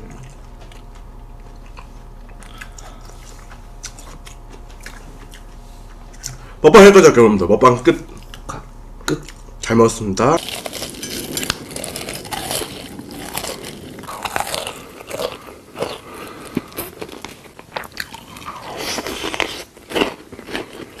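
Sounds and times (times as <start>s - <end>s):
crunchy biting and chewing: 0.0s - 6.4s, 10.4s - 21.0s.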